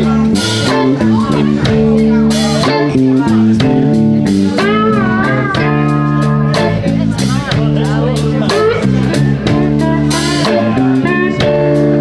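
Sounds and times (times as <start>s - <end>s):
bending lead guitar lines: 0.0s - 12.0s
blues band playing live: 0.0s - 12.0s.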